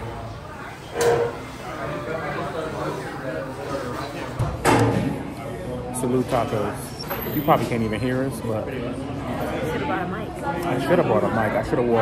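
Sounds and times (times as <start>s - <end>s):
diners' voices overlapping: 0.0s - 12.0s.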